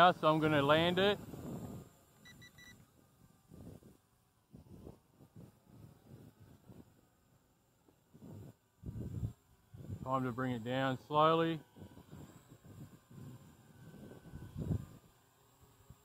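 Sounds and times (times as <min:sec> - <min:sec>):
wind rumbling on microphone: 0:00.0 - 0:02.0, 0:03.0 - 0:07.3, 0:08.0 - 0:10.6, 0:11.6 - 0:15.2.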